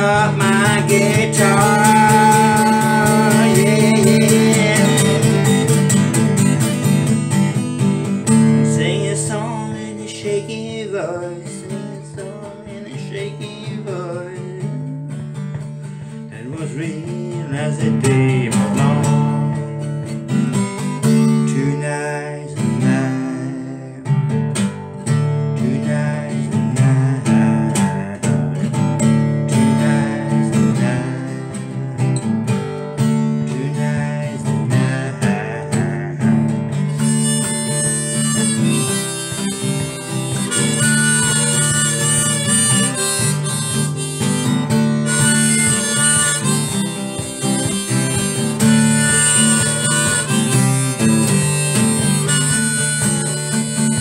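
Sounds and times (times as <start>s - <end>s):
harmonica playing: 0.0s - 15.7s, 34.2s - 54.0s
strummed acoustic guitar: 0.0s - 54.0s.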